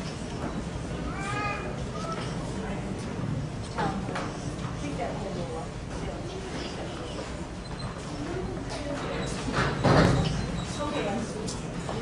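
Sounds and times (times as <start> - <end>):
murmur of voices: 0.0 - 12.0
young voice calling out: 1.1 - 2.3
brief squeak: 9.1 - 11.2.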